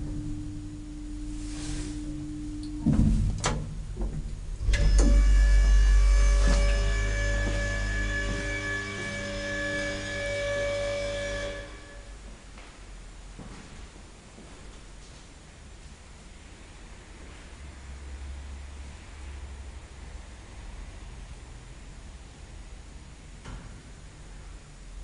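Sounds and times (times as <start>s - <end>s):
electric motor hum with whine: 0.0s - 12.6s
elevator running tone: 0.0s - 12.6s
elevator car stopping knock: 2.7s - 11.7s.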